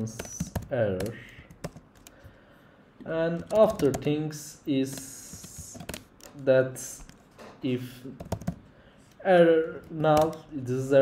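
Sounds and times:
computer keyboard keystrokes: 0:00.1 - 0:02.2, 0:03.4 - 0:04.1, 0:04.9 - 0:06.4, 0:08.2 - 0:08.6, 0:09.8 - 0:10.5.

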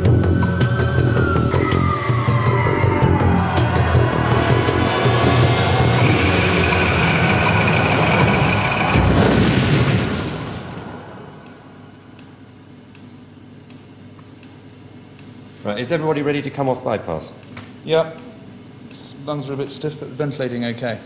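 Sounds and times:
held high tone: 0:00.0 - 0:08.9
rushing whoosh: 0:00.0 - 0:11.7.

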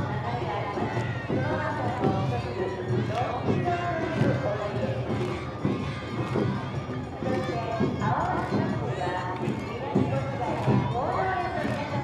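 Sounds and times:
shouted voices: 0:00.0 - 0:12.0
drum beat: 0:00.8 - 0:12.0.

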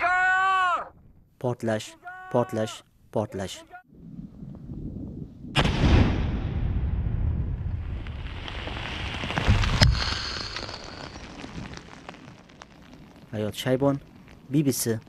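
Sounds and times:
explosion blast with rumble: 0:04.8 - 0:12.4.

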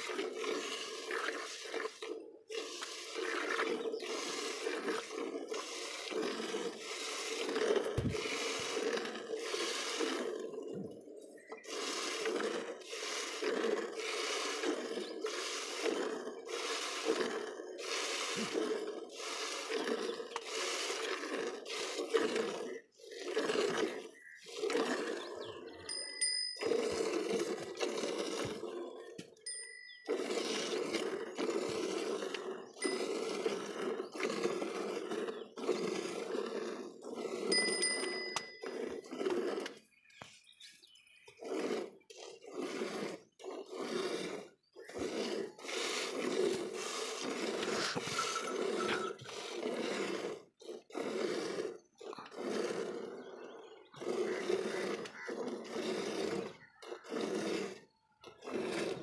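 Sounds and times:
short bell-like rings: 0:25.9 - 0:26.9, 0:29.5 - 0:30.1, 0:37.5 - 0:38.6
milk squirting into steel bucket: 0:41.3 - 0:52.5.

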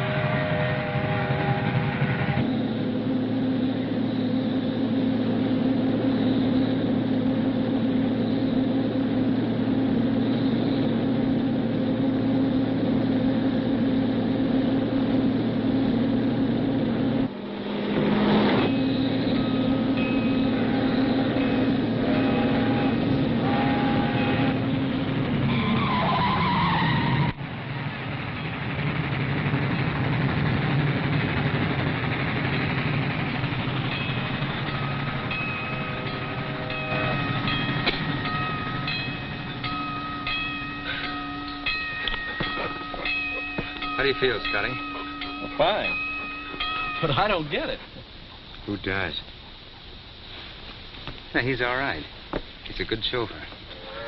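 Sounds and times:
train whistle: 0:00.0 - 0:04.7, 0:18.6 - 0:27.4, 0:34.0 - 0:47.0, 0:53.7 - 0:54.0
car and road noise: 0:00.0 - 0:54.0.

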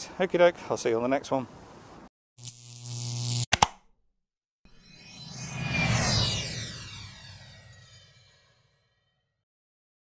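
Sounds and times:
sharp clicks: 0:03.4 - 0:03.9
whoosh: 0:04.7 - 0:08.8.

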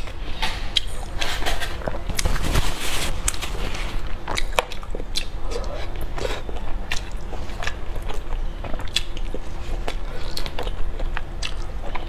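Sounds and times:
biting and chewing: 0:00.0 - 0:12.0.

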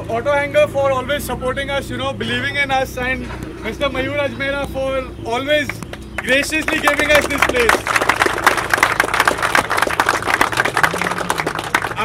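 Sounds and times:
group applauding: 0:05.9 - 0:12.0.

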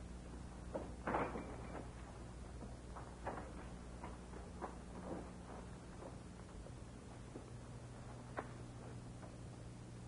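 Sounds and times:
low hum and hiss: 0:00.0 - 0:10.0
soft footsteps on floor: 0:02.5 - 0:09.5.

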